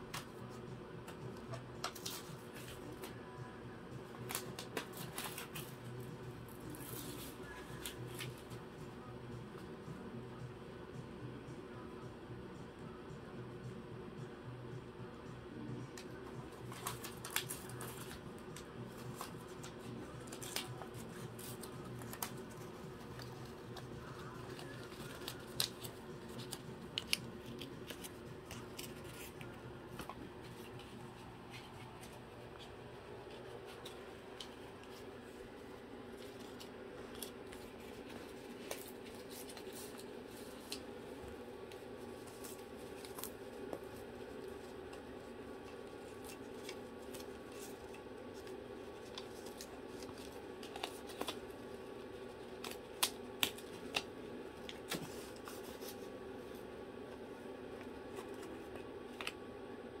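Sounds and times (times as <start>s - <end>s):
paper bills crinkling: 16.6s - 56.6s.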